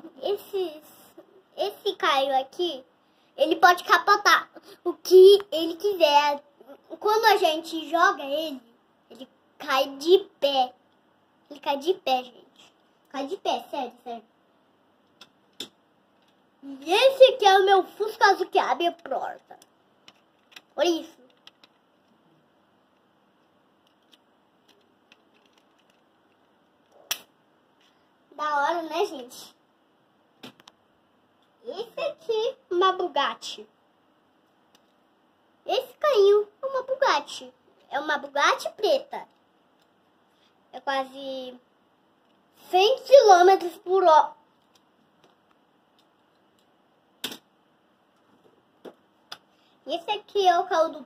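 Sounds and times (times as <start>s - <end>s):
toy cars clicking on wooden shelf: 20.0s - 21.8s, 23.8s - 27.3s.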